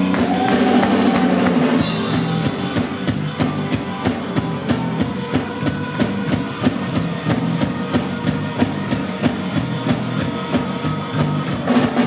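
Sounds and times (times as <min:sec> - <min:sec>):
drum kit beat: 0:00.0 - 0:12.0
electric guitar chords: 0:00.0 - 0:12.0.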